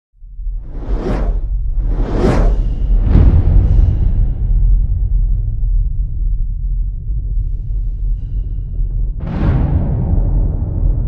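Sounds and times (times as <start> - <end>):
deep rumble: 0.2 - 11.0
whoosh: 0.5 - 5.4.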